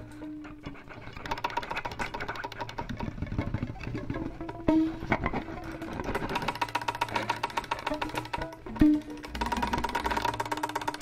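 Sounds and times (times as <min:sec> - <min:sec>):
violin with electronic effects: 0:02.4 - 0:11.0.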